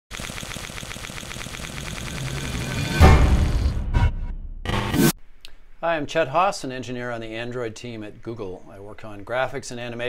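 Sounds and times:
rapid electronic pulsing: 0.1 - 3.8
intro music sting: 1.8 - 5.1.

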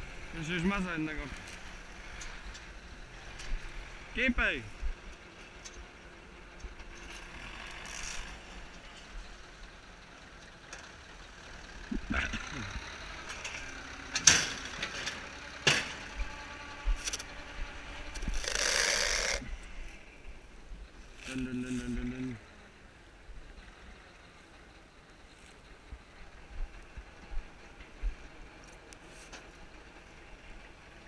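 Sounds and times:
low mechanical rumble: 0.0 - 31.0.

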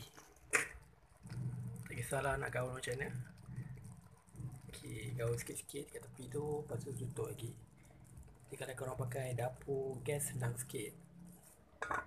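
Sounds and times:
wet squishing of stirred noodles: 0.0 - 11.8.

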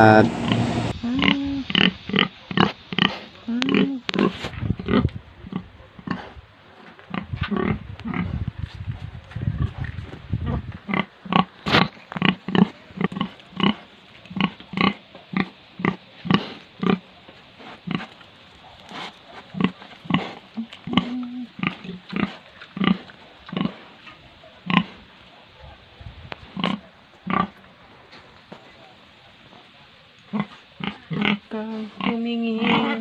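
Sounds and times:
pig grunting: 10.4 - 18.2, 18.8 - 25.1, 26.5 - 27.6, 30.3 - 33.0.

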